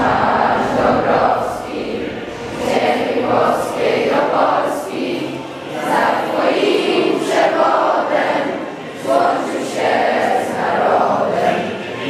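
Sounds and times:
children singing together: 0.0s - 12.0s.

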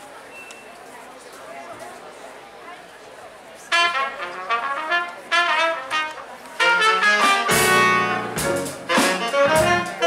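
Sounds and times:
trumpet and saxophone phrases: 3.7s - 10.0s
bass and drums: 6.6s - 10.0s.

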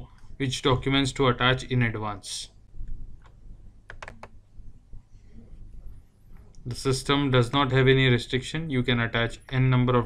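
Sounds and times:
faint room noise: 0.0s - 10.0s
computer mouse clicks: 2.8s - 4.4s.

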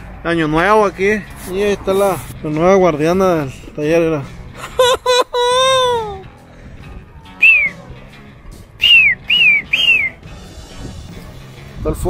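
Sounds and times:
person whistling falling notes: 7.4s - 7.8s, 8.8s - 10.2s.

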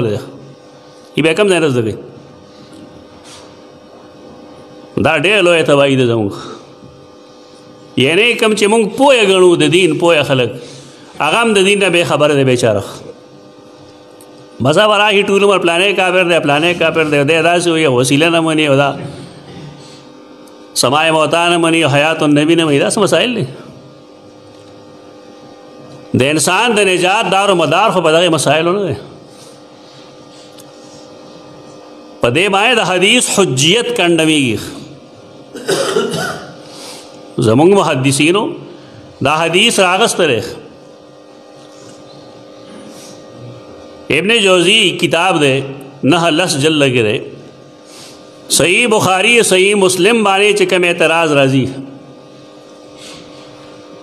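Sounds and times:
steady background hum: 0.0s - 54.0s.

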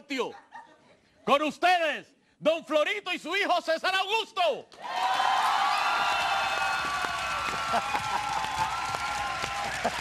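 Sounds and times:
audience cheering and shouting: 4.8s - 10.0s
audience applauding: 4.9s - 10.0s.

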